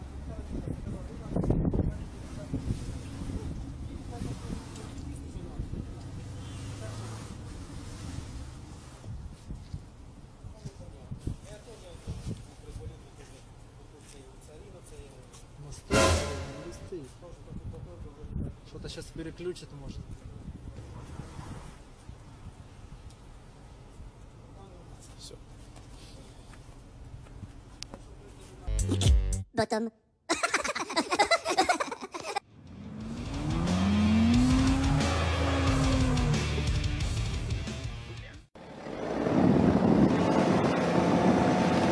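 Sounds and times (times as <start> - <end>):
music: 15.9 - 17.0, 28.7 - 29.5, 33.1 - 38.5
cartoon characters laughing: 30.3 - 32.4
car engine and tyre drone: 32.5 - 37.3, 38.6 - 41.9.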